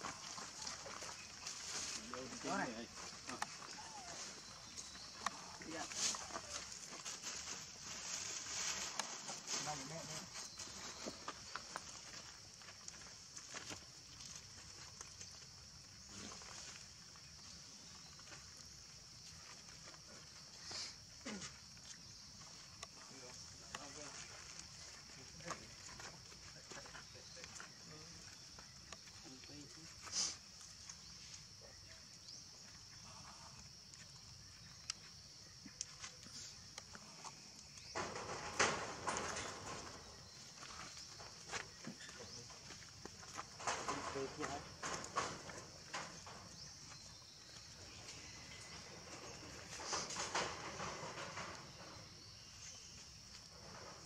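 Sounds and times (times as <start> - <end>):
high-pitched hiss: 0.0 - 54.0.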